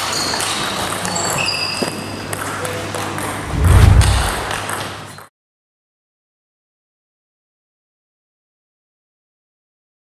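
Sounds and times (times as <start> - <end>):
low rumbling swell: 3.4 - 4.6.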